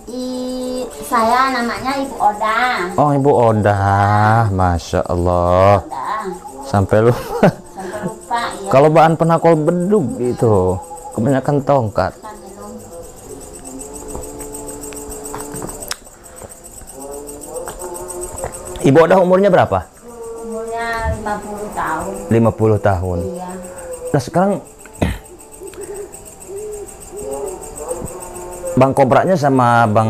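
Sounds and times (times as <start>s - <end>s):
low hooting calls: 0.0s - 29.5s
crickets chirping: 0.0s - 30.0s.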